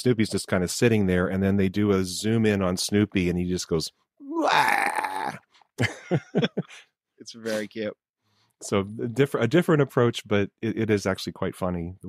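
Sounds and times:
man groaning: 4.2 - 5.4
short bits of voice: 7.4 - 7.8.

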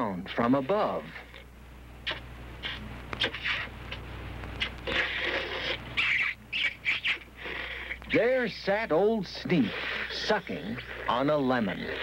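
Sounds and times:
man sucking on lemon: 2.0 - 4.0, 4.6 - 8.0, 9.6 - 12.0.

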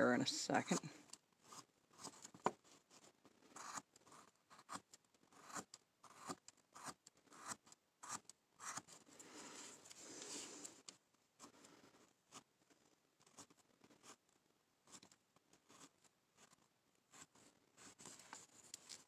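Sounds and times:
carving tool scraping wood: 1.4 - 2.6, 3.5 - 10.8, 14.8 - 19.0.

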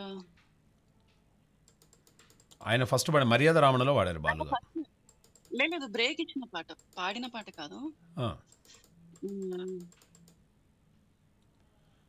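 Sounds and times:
computer keyboard keys clicking: 1.7 - 2.6, 5.1 - 5.6, 8.5 - 10.4
person humming: 9.2 - 9.9.

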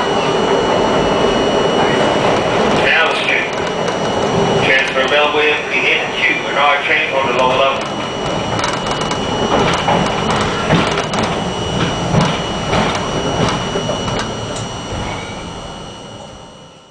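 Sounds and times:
subway wheels clicking over joints: 0.0 - 16.6
constant high-pitched tone: 0.0 - 16.9
subway car rumble: 0.0 - 16.9.

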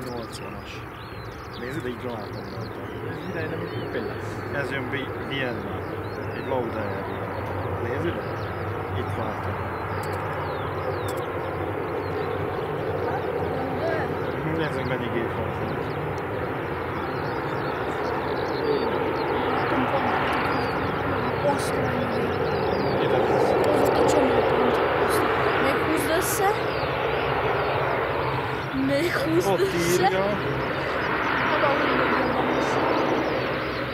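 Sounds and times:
turboprop engines droning: 0.0 - 33.9
voices chatting: 0.0 - 33.9.

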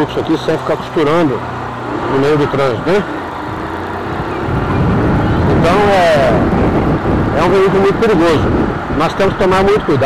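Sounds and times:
motorcycle riding off: 0.0 - 10.0
wind noise on microphone: 3.5 - 9.9.

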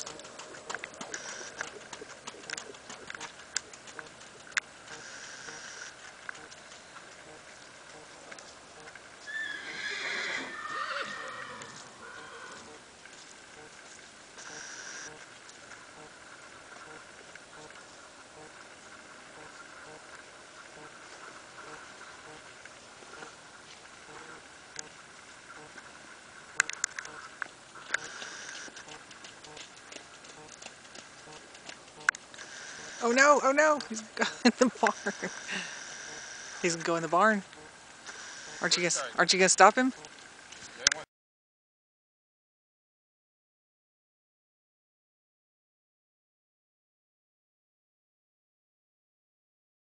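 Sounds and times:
hooves on soft turf: 0.0 - 9.6, 11.2 - 25.0, 27.0 - 35.5
colt whinnying: 9.3 - 12.8.

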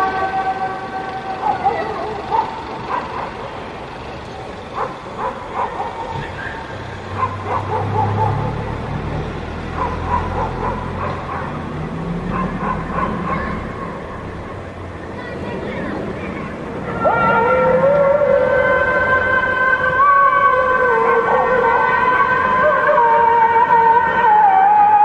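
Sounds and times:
vehicle engine rumble: 0.0 - 25.0
dogs barking: 1.3 - 3.6, 4.6 - 8.9, 9.6 - 13.9.

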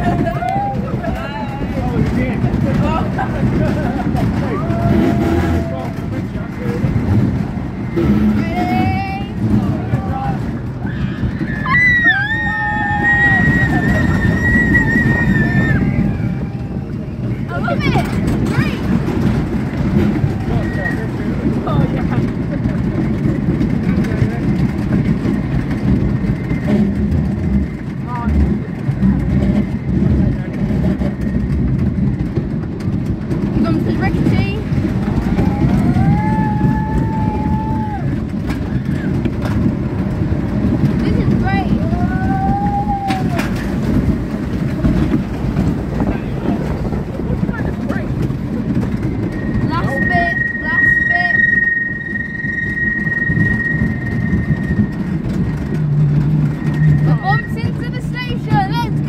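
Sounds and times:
roller coaster wheels rumbling: 0.0 - 59.0
riders crying out: 10.7 - 17.1, 35.0 - 39.2, 41.2 - 44.0.

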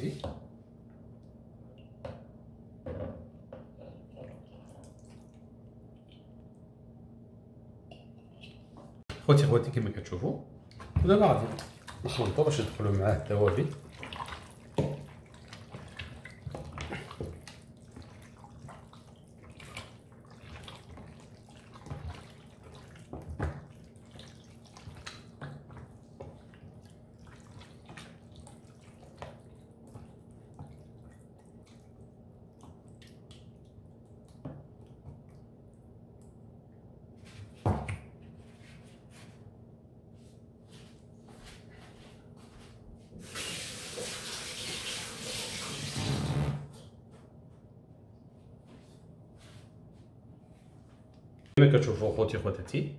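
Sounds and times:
wet squelches of kneading: 10.6 - 36.4.

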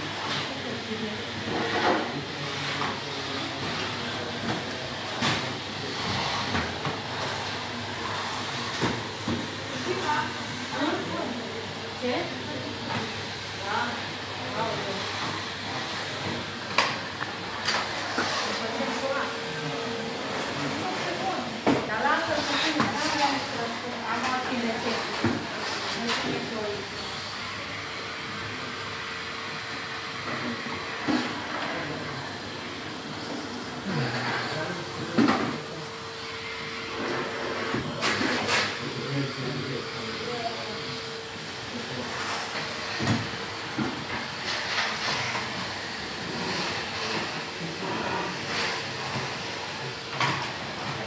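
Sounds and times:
vacuum cleaner running: 0.0 - 51.0.

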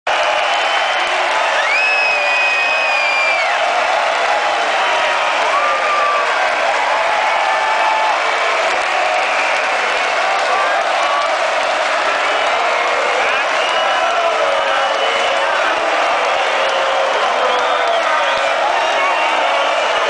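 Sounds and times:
crowd cheering and shouting: 0.1 - 20.0
crowd clapping: 0.1 - 20.0.

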